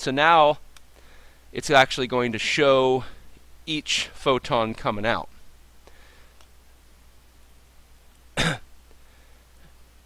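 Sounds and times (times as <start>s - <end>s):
short cough: 8.4s - 8.7s.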